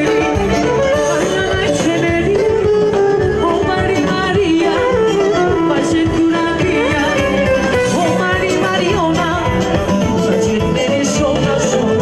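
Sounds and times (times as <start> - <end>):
live band dance music: 0.0 - 12.0
person singing ornamented melody: 0.0 - 12.0
steady drum beat: 0.0 - 12.0.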